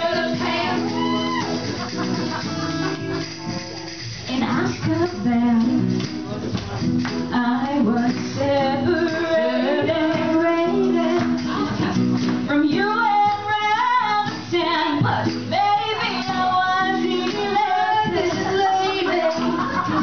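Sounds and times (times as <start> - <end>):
people singing: 0.0 - 1.8, 7.4 - 12.0, 12.6 - 20.0
acoustic guitar: 0.0 - 20.0.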